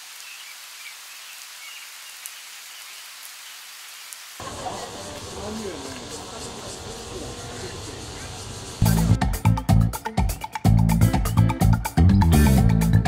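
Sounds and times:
light rain hissing: 0.0s - 9.2s
music with voice: 8.8s - 13.0s.

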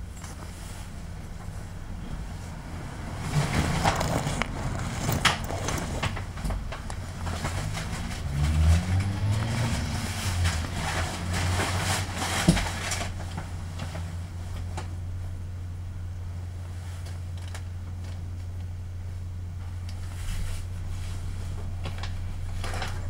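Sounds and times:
diesel bus engine humming: 0.0s - 23.0s.

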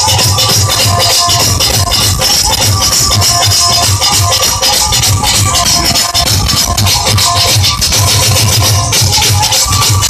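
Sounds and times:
dhol drum beat: 0.0s - 10.0s
folk melody line: 0.0s - 10.0s.

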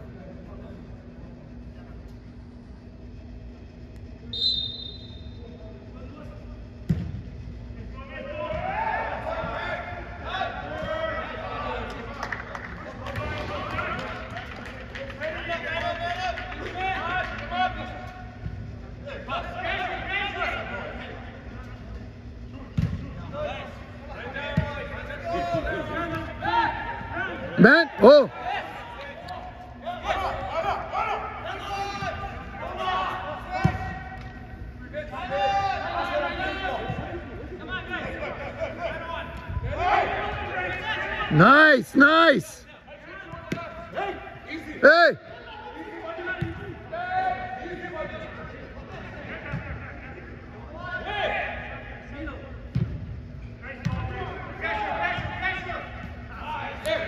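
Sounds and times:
players shouting: 7.9s - 12.1s, 23.3s - 52.4s, 53.7s - 57.0s.

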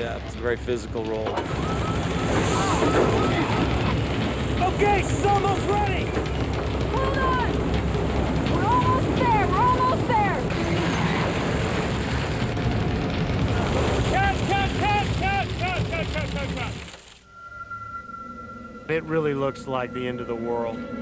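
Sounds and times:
wind machines rushing: 0.0s - 17.2s.

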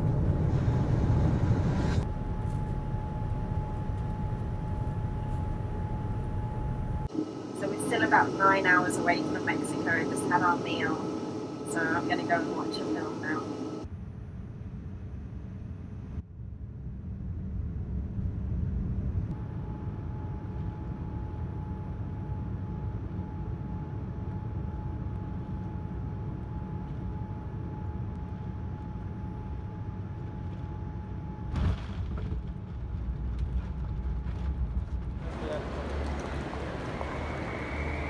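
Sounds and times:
jet cabin engine rumble: 0.0s - 13.9s, 17.0s - 38.0s
faint thin whine: 1.4s - 13.8s
runway rolling rumble: 32.0s - 38.0s.

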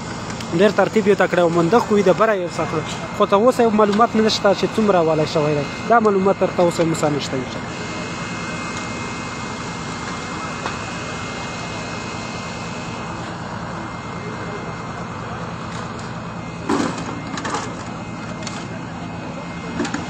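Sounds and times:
machine motor droning: 0.0s - 20.0s.

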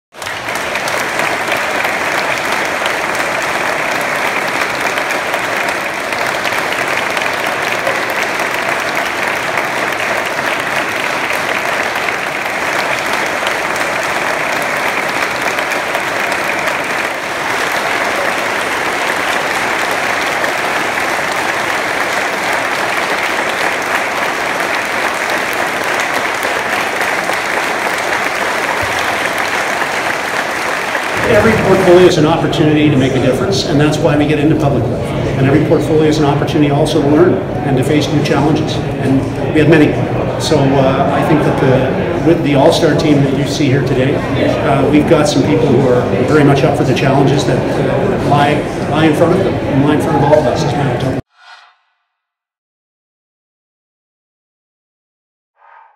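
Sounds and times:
audience applause: 0.1s - 34.3s.

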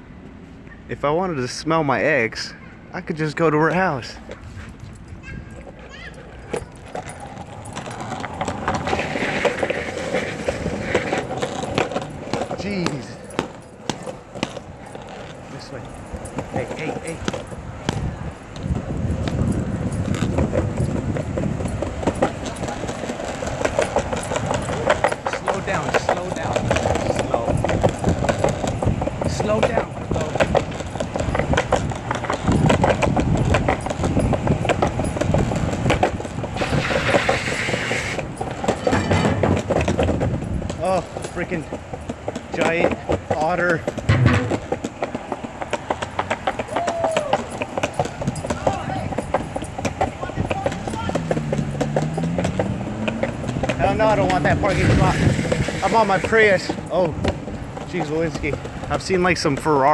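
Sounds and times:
people talking: 0.9s - 4.3s, 12.5s - 13.3s, 15.5s - 17.3s, 24.8s - 27.6s, 29.2s - 30.5s, 40.8s - 41.7s, 42.5s - 44.6s, 48.4s - 49.2s, 50.0s - 51.3s, 53.8s - 57.2s, 57.9s - 59.9s.

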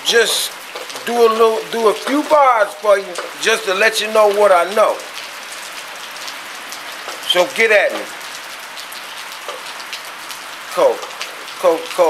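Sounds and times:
rain on a metal roof: 0.0s - 12.0s.

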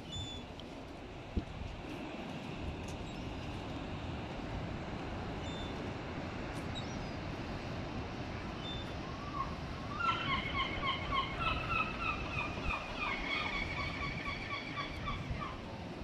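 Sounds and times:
gull calling: 9.9s - 15.2s.

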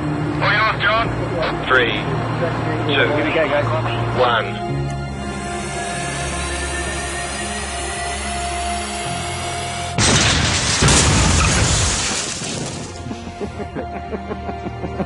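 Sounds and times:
background music: 0.0s - 15.0s
car collision crash: 10.0s - 13.3s.

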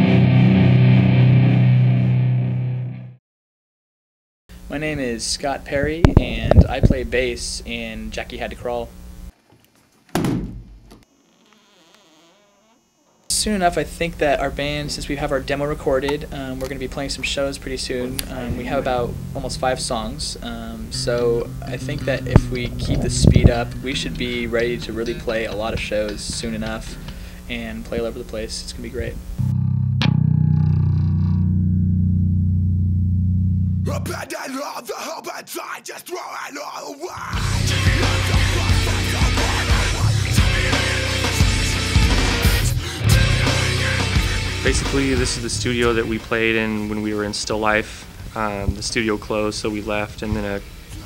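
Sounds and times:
electric bass guitar notes: 0.0s - 3.2s, 5.8s - 7.2s, 13.4s - 34.2s, 37.4s - 46.6s
heavy thunk: 10.1s - 11.0s.

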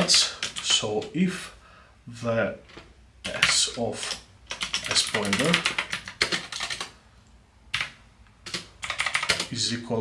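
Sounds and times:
typing on keyboard: 3.3s - 6.9s, 7.7s - 9.5s.

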